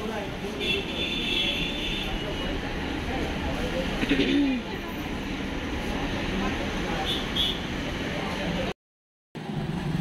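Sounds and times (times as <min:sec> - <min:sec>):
indistinct customer voices: 0:00.0 - 0:08.8.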